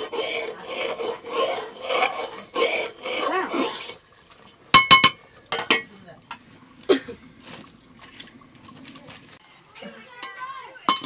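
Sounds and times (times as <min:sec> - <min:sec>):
metal ladle scraping pot: 0:00.0 - 0:06.5
metallic clanks against pot: 0:04.7 - 0:06.4, 0:10.2 - 0:11.0.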